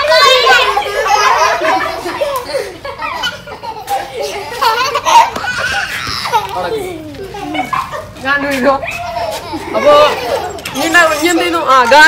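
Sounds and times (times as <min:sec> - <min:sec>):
children's voices: 0:00.0 - 0:08.2, 0:08.8 - 0:12.0
girl chattering and laughing: 0:00.0 - 0:08.2, 0:08.8 - 0:11.7.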